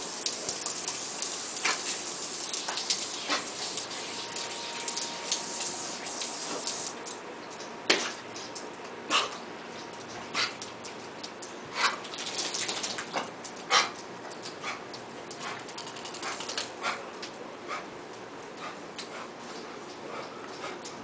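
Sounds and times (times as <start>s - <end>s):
dogs playing on wet tiles: 0.2s - 17.9s.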